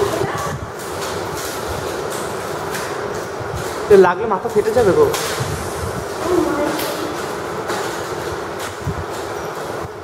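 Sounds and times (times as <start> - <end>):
steady rumbling noise: 0.0 - 10.0.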